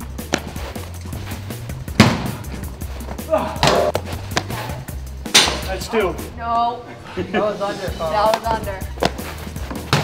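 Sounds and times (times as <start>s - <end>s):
background music with low bass: 0.0s - 6.6s, 7.3s - 10.0s
baseball smack: 1.9s - 2.4s, 3.6s - 4.6s.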